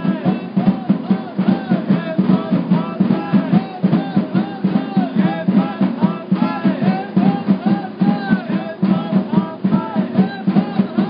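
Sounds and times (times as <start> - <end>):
drums beating steady rhythm: 0.0 - 11.0.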